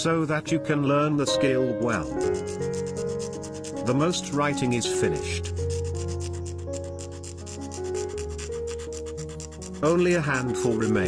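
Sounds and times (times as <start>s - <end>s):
background music with held notes: 0.0s - 11.0s
blade scraping paper: 1.8s - 11.0s.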